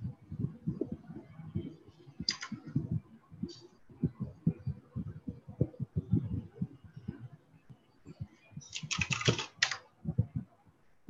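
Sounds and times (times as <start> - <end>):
muffled keyboard typing: 0.0 - 7.3, 8.1 - 10.5.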